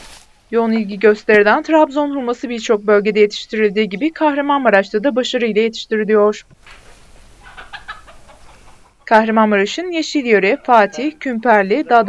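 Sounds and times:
faint outdoor ambience: 0.0 - 12.0
distant chicken clucks: 6.7 - 12.0.

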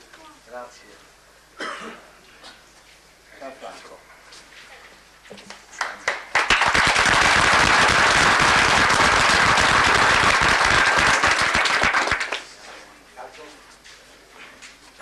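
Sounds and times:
audience applauding: 5.8 - 12.5.

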